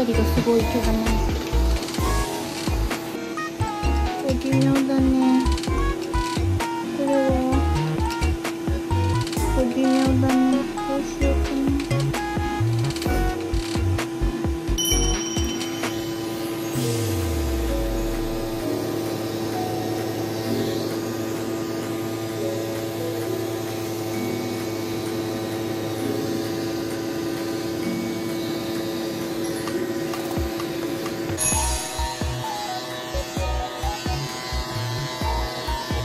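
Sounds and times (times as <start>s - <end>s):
electric clipper buzzing: 0.0s - 36.0s
light background music: 0.0s - 36.0s.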